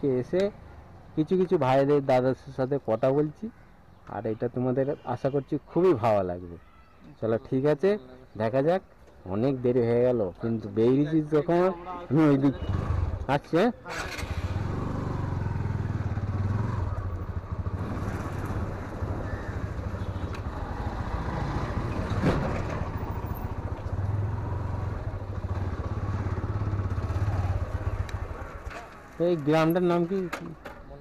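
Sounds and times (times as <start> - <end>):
motorcycle engine running: 23.2 - 28.6.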